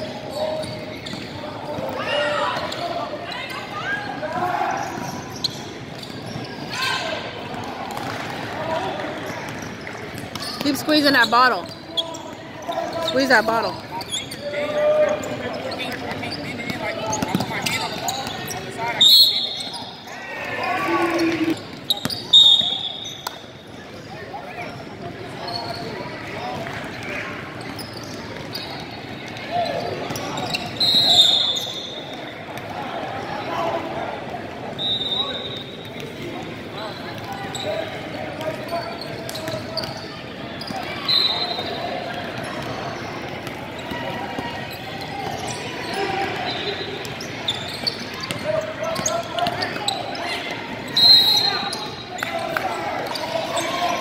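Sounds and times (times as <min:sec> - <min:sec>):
chatter of players and spectators: 0:00.0 - 0:54.0.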